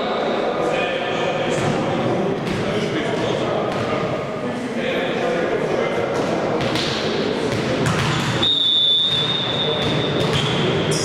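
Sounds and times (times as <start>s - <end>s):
players calling and chattering: 0.0s - 11.0s.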